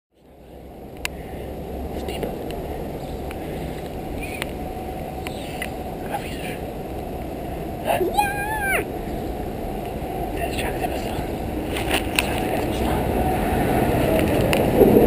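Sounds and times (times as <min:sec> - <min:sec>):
low outdoor rumble: 0:00.1 - 0:15.0
faint chirps: 0:05.2 - 0:06.6
child calling out: 0:07.8 - 0:08.9.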